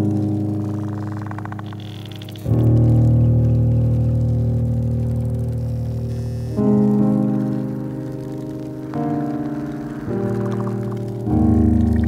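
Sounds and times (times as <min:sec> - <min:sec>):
keyboard chords: 0:06.1 - 0:12.0.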